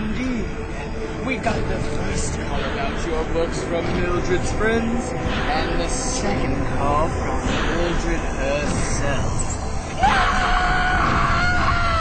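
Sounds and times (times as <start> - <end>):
woman screaming: 10.0 - 12.0.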